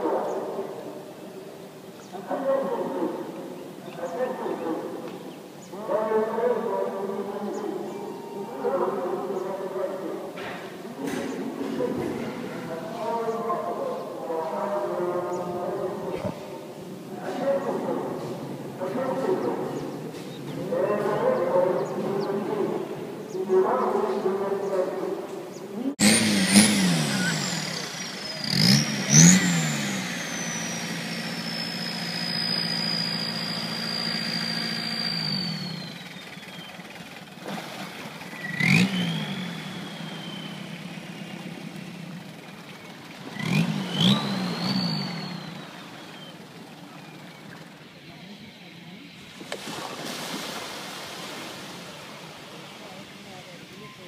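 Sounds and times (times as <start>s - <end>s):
boat engine revving: 0.0s - 25.0s, 25.6s - 54.0s
high whine gliding down: 25.8s - 36.9s, 38.3s - 49.5s.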